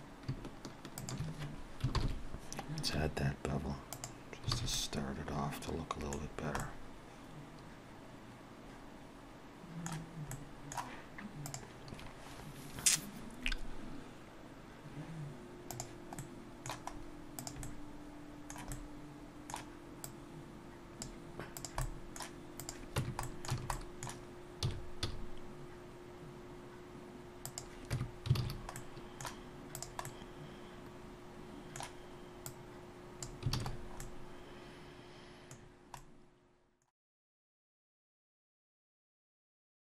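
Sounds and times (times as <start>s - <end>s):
faint steady hum: 0.0s - 36.9s
mouse and keyboard clicking: 0.2s - 2.7s, 9.8s - 11.7s, 15.7s - 17.8s, 18.5s - 18.8s, 19.5s - 20.2s, 21.0s - 25.2s, 27.5s - 30.2s.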